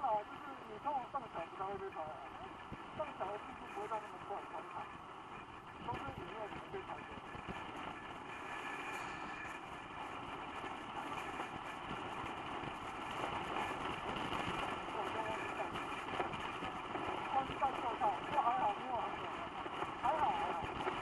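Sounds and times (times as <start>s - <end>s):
car cabin road and engine noise: 0.4s - 21.0s.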